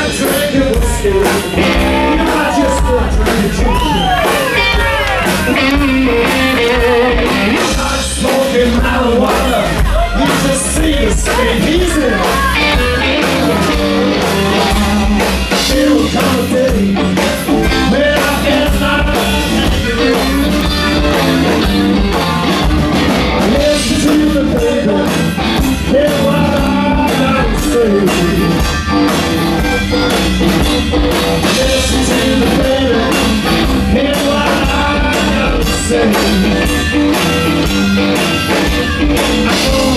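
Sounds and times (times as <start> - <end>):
bass guitar: 0.0 - 39.9
drum kit beat: 0.0 - 39.9
electric guitar: 0.0 - 39.9
wavering melodic lead line: 0.0 - 39.9.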